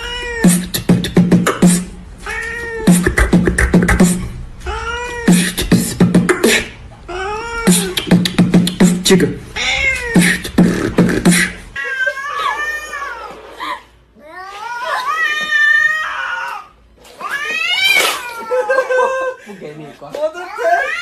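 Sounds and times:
cat meowing: 0.0s - 0.6s, 4.6s - 5.5s, 9.6s - 10.5s, 14.2s - 18.5s
man beatboxing: 0.4s - 2.0s, 2.8s - 4.4s, 5.2s - 6.8s, 7.6s - 11.7s.

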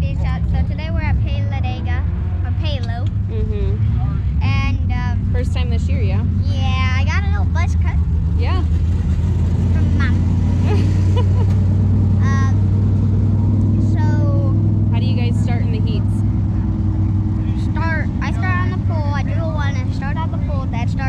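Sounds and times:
voices: 0.0s - 8.8s, 9.6s - 11.6s, 12.2s - 12.7s, 13.5s - 21.0s
low engine drone: 0.0s - 21.0s.

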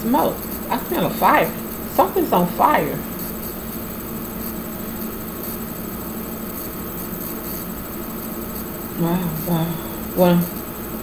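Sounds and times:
low room hum and hiss: 0.0s - 11.0s.

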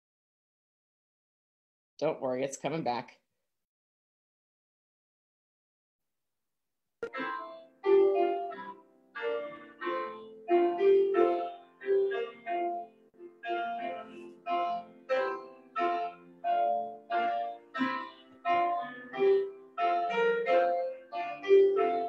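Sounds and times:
instrumental music with struck notes: 7.0s - 22.0s.

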